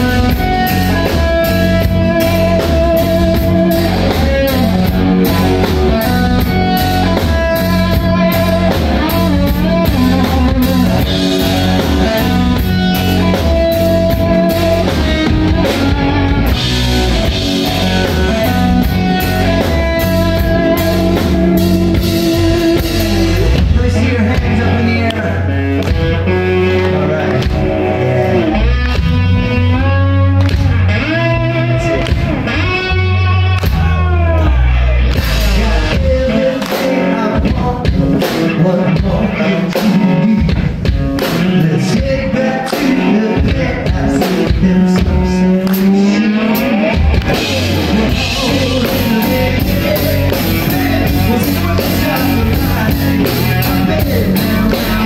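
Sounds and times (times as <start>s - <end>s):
drum kit pounding: 0.0s - 26.4s, 33.4s - 55.0s
bass guitar: 0.0s - 55.0s
electric guitar riffs: 0.0s - 55.0s.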